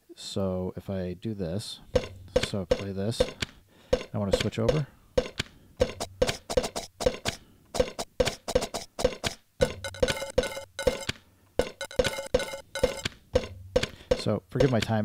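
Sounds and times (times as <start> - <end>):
percussive sample loops: 2.0 - 3.4, 4.0 - 14.9.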